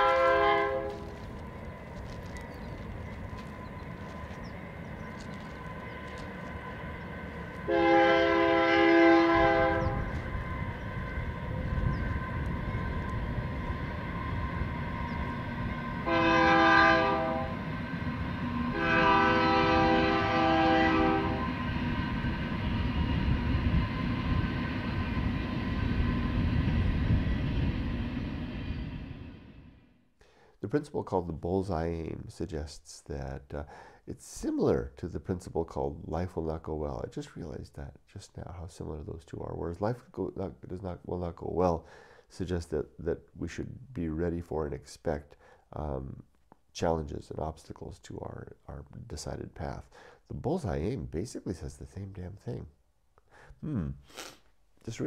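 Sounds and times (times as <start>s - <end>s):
train horn blasts: 0.0s - 1.3s, 7.6s - 22.2s
train rumbling: 0.0s - 30.0s.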